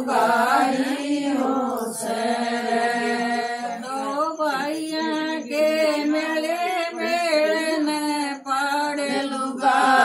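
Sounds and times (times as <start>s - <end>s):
women singing unaccompanied: 0.0s - 10.0s.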